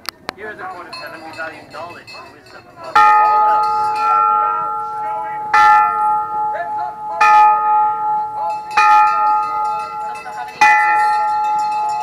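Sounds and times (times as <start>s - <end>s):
bell ringing: 0.6s - 12.0s.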